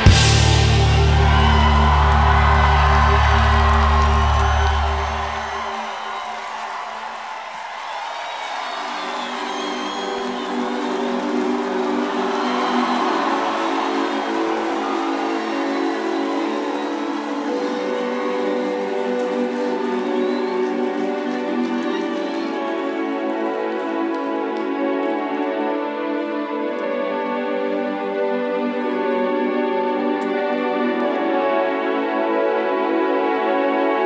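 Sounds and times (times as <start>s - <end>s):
rock band bass chord: 0.0s - 4.0s
crowd cheering and whooping: 0.0s - 24.2s.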